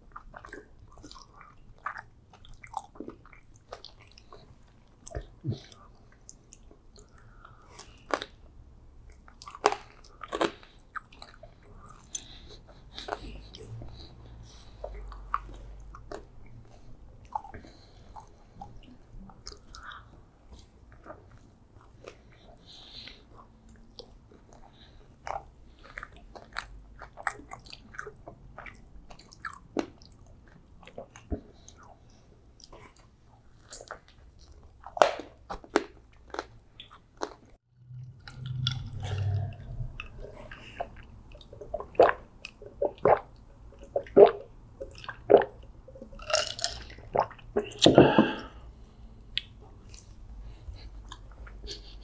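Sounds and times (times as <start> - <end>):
chewing and biting soft pastry: 0.0 - 47.9, 48.7 - 52.0
wet mouth clicks: 9.1 - 21.4, 36.4 - 48.6.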